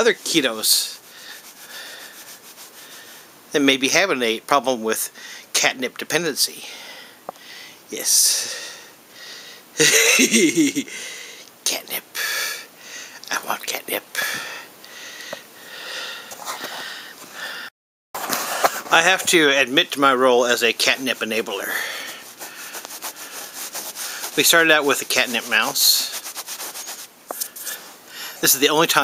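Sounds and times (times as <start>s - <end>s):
soft rubbing noise: 0.0s - 3.3s, 16.3s - 17.4s, 18.2s - 29.0s
cat sniffing: 20.9s - 28.4s.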